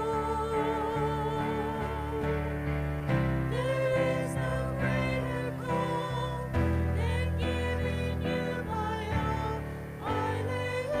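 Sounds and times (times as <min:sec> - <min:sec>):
voices singing slow melody: 0:00.0 - 0:11.0.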